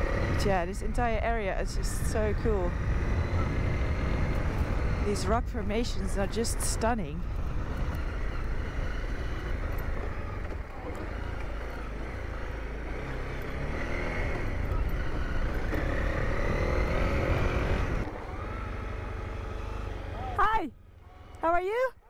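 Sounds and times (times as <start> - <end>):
wind rumble on microphone: 0.0 - 11.6, 13.9 - 18.1
motorcycle engine running: 0.0 - 22.0.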